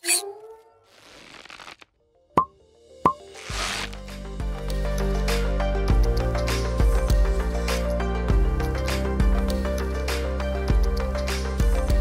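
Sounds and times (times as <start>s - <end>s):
music with steady bass: 3.5s - 12.0s.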